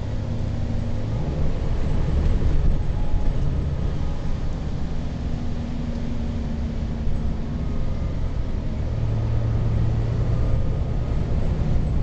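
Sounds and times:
bus engine rumble: 0.0s - 12.0s
road noise: 0.0s - 12.0s.

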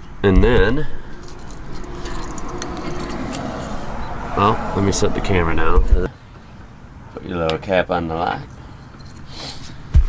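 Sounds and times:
steady low rumble: 0.4s - 6.1s.

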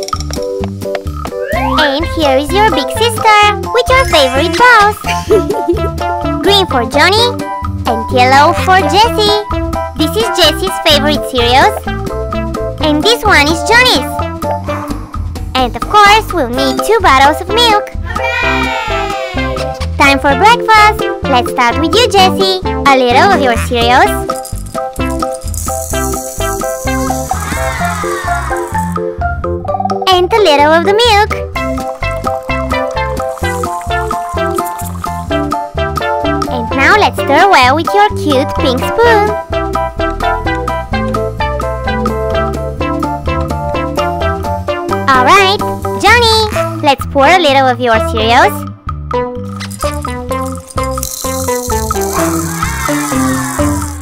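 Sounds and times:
light background music: 0.0s - 54.0s
candy sprinkles rattling into bowl: 23.6s - 29.0s, 33.2s - 35.2s, 49.4s - 54.0s.

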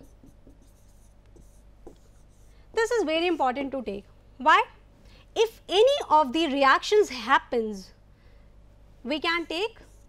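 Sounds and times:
stylus scratching on pen tablet: 0.0s - 3.0s, 9.5s - 10.0s.

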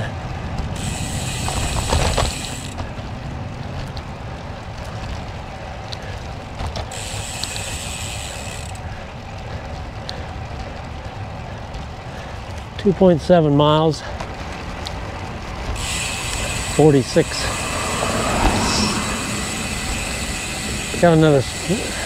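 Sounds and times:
bicycle freehub ticking: 0.0s - 22.0s
wind and tyres rumbling: 0.0s - 22.0s.

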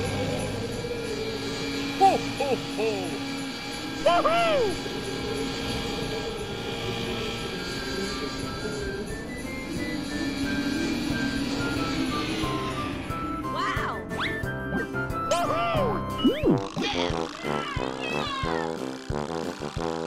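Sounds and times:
cartoon snowmobile engine drone: 0.0s - 20.0s
simple melody: 8.5s - 17.4s.

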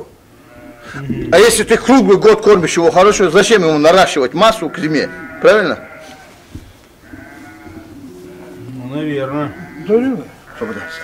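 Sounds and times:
sheep bleating: 0.4s - 6.4s, 7.0s - 11.0s.

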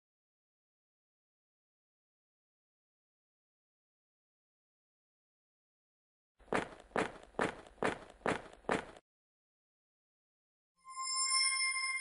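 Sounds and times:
footsteps: 6.4s - 9.0s.

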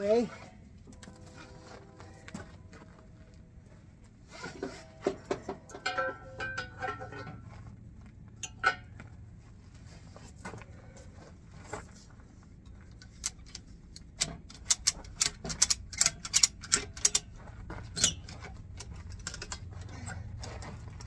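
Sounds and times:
ratchet strap clicking: 14.2s - 17.3s.

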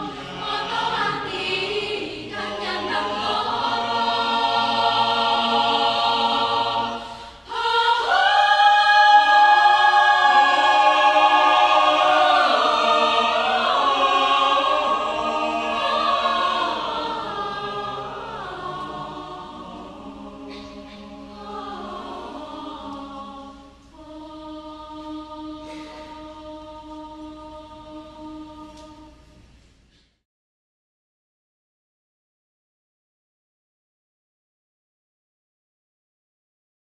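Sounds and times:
mixed choir singing a cappella: 0.0s - 29.4s.

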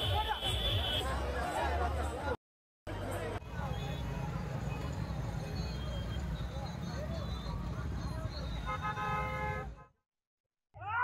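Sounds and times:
vehicle horn: 0.0s - 1.1s, 8.4s - 10.0s
road noise rumble: 1.1s - 9.8s.

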